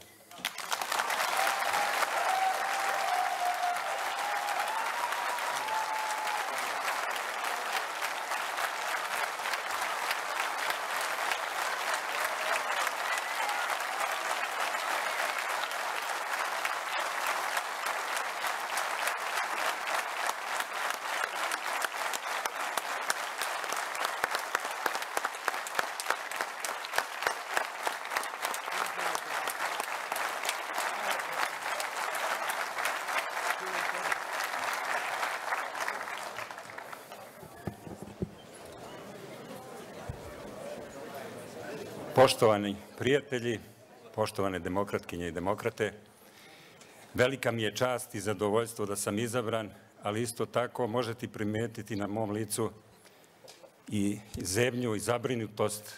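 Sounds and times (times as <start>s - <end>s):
audience applauding: 0.3s - 41.5s.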